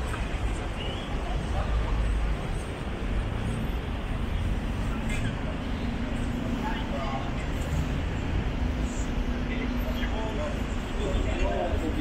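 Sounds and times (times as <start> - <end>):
low rumble of passing cars: 0.0 - 12.0.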